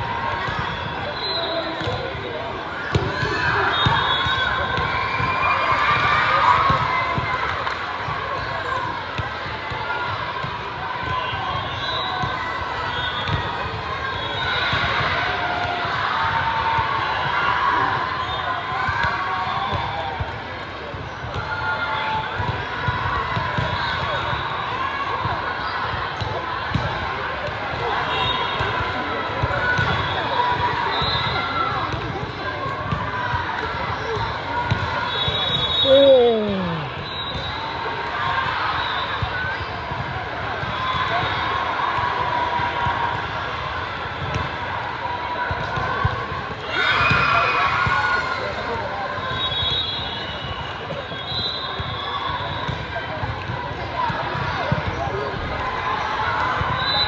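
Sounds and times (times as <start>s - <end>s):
crowd of voices: 0.0s - 57.0s
loud shout: 35.7s - 37.1s.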